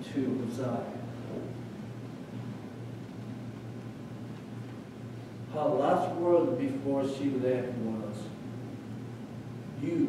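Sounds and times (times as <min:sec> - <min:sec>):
man speaking: 0:00.0 - 0:01.1, 0:05.5 - 0:08.4, 0:09.8 - 0:10.0
low steady hum with hiss: 0:00.0 - 0:10.0.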